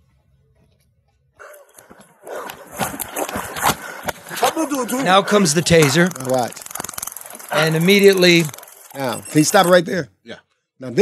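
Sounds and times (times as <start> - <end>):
strained unclear voices: 2.8 - 11.0.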